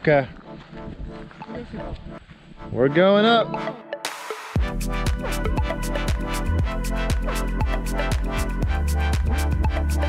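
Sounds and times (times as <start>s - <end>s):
background music held notes: 0.0s - 10.0s
man's voice: 2.7s - 3.9s.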